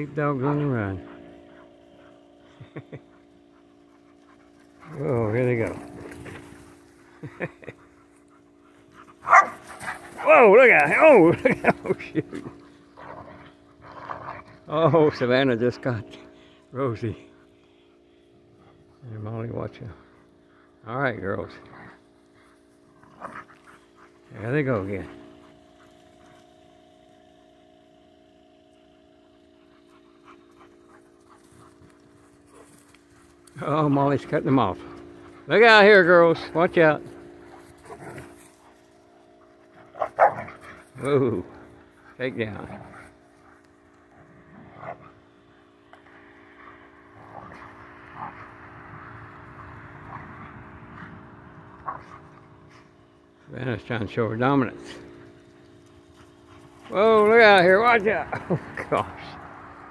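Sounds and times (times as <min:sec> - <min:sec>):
dogs panting: 0:00.0 - 0:15.2, 0:15.8 - 0:20.8, 0:21.4 - 0:26.9, 0:29.3 - 0:53.6, 0:54.2 - 0:59.9
steady low hum: 0:00.0 - 0:59.9
dogs scuffling on grass: 0:03.8 - 0:08.2, 0:08.8 - 0:12.4, 0:30.3 - 0:45.8, 0:54.7 - 0:59.9.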